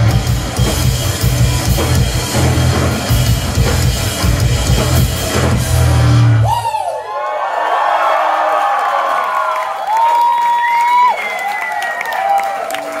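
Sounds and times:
crowd cheering and whooping: 6.0s - 13.0s.

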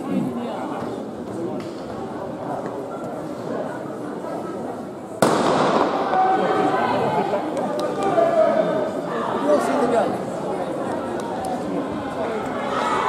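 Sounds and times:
spectator chatter: 0.0s - 13.0s
starting pistol shot: 5.2s - 6.0s.

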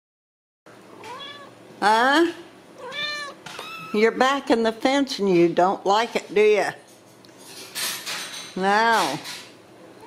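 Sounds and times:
kitten meowing: 1.0s - 1.6s, 2.8s - 4.0s.

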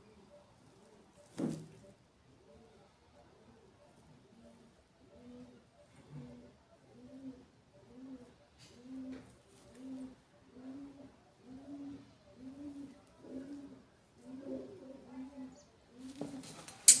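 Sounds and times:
pigeon cooing: 0.0s - 17.0s.

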